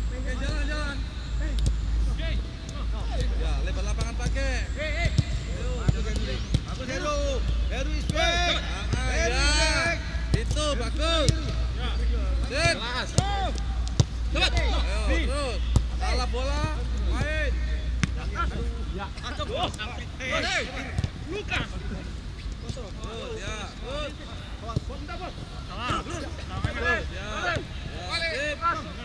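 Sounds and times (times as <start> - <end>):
players shouting calls: 0.0 - 29.0.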